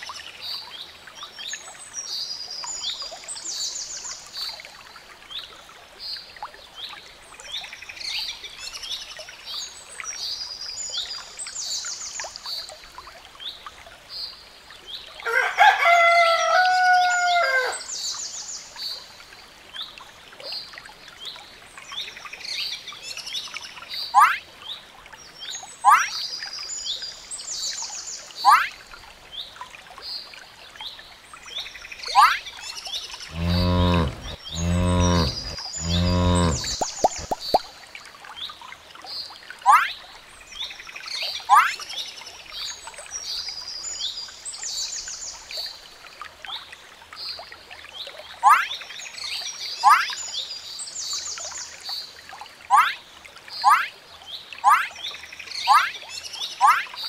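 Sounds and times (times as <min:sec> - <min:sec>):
rooster crowing: 0:15.3 - 0:17.8
birds chirping: 0:33.2 - 0:37.6
cattle lowing: 0:33.3 - 0:37.5.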